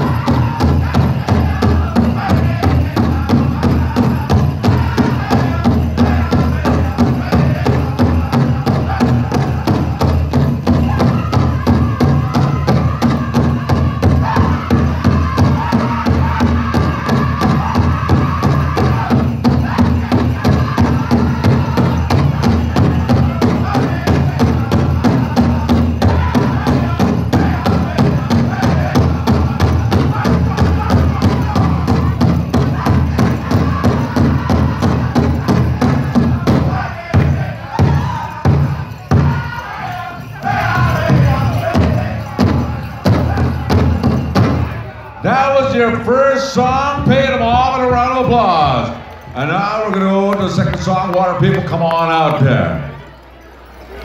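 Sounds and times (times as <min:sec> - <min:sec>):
group singing: 0:00.0 - 0:45.9
big drum beating: 0:00.0 - 0:46.0.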